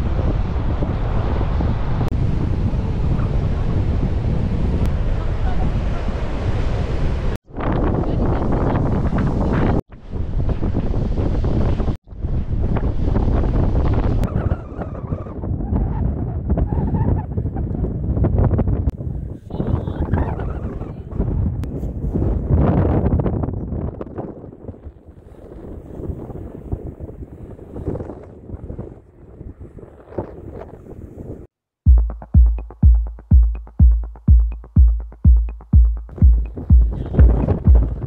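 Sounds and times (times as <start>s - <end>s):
wind buffeting microphone: 0.0s - 31.5s, 35.9s - 38.0s.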